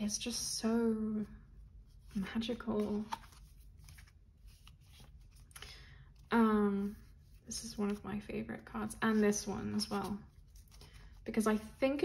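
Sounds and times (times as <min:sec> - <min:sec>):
cards rustling and clicking: 0:02.5 - 0:05.6, 0:09.8 - 0:11.2.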